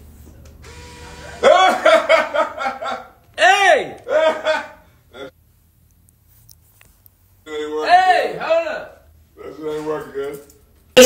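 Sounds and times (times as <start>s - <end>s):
young man whooping and laughing: 1.4s - 5.3s.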